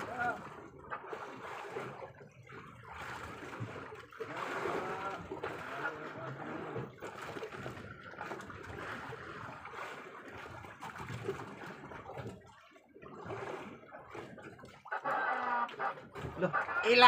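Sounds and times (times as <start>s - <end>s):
water lapping against boat hull: 0.0s - 17.0s.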